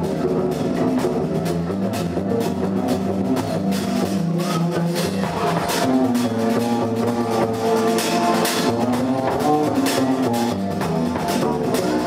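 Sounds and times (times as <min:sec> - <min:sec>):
live jazz band playing: 0:00.0 - 0:12.0.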